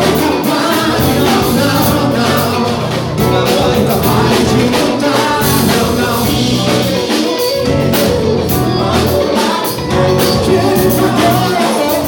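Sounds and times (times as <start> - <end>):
backing band: 0.0 - 12.0
voices singing gospel: 0.0 - 12.0.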